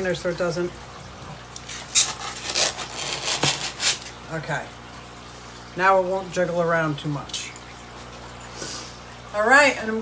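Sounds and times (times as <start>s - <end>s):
packing material rustling in box: 1.7s - 4.1s.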